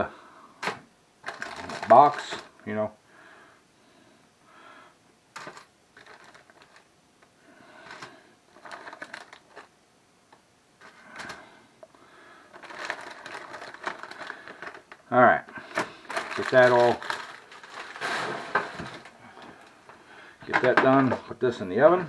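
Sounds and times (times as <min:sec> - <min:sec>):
plastic bag crinkling: 0:01.2 - 0:02.6, 0:05.4 - 0:06.9, 0:07.7 - 0:09.7, 0:12.4 - 0:20.0.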